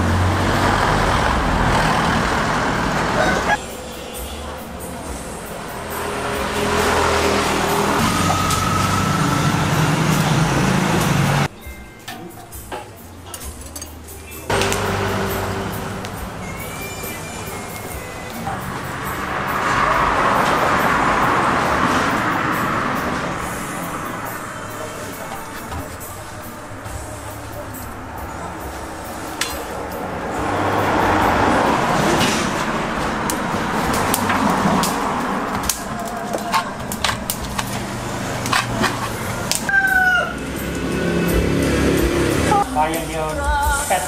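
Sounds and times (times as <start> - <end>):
road vehicle passing: 0.0 - 11.6, 13.1 - 44.0
rooster crowing: 3.1 - 3.6, 39.6 - 40.6
background music: 3.3 - 44.0
metal hook clinking on skewers: 11.9 - 14.4.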